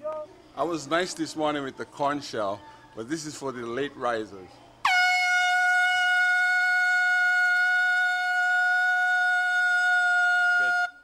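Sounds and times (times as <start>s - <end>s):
air horn blast: 4.8s - 11.0s.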